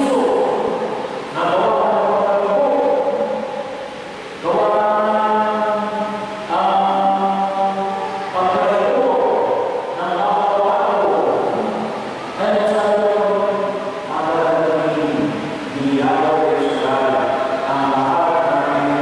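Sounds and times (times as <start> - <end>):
man chanting a prayer: 0.0 - 3.4, 4.4 - 19.0.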